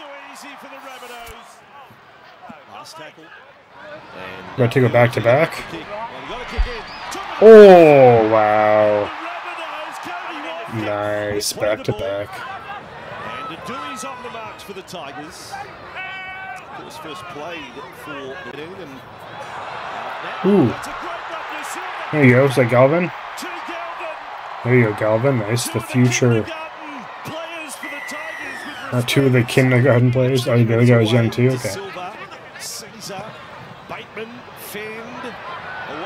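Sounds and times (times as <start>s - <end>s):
stadium crowd cheering: 0.0s - 36.0s
dull thump: 6.4s - 6.9s
man saying ooh: 7.4s - 9.1s
commentator talking: 10.5s - 12.4s, 22.1s - 23.8s, 24.6s - 32.0s.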